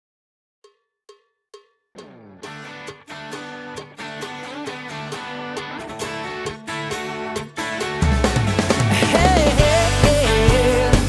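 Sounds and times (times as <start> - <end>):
guitar: 2.0 - 11.0.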